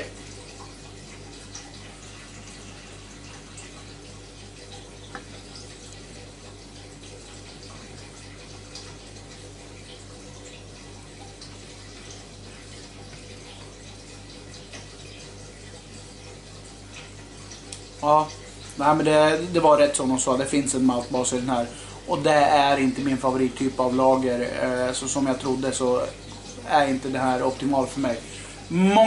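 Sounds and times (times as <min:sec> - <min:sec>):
faint electrical hum: 0:00.0 - 0:29.0.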